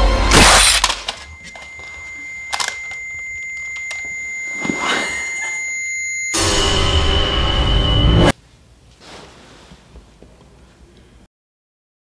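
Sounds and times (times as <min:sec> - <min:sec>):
high-pitched ringing tone: 0:00.6 - 0:08.3.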